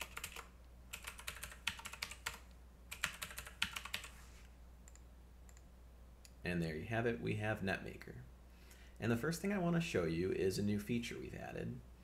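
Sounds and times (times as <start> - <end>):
computer keyboard typing: 0.0 - 4.2, 4.8 - 5.7.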